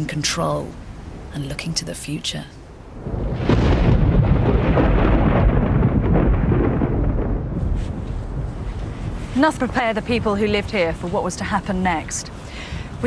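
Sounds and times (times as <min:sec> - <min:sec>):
loud thunder rumbling: 0:02.9 - 0:11.1.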